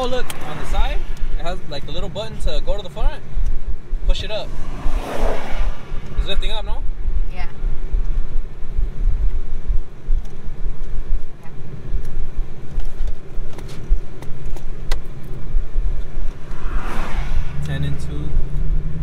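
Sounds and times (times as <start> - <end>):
engine and road rumble: 0.0 - 19.0
wind through open window: 0.0 - 19.0.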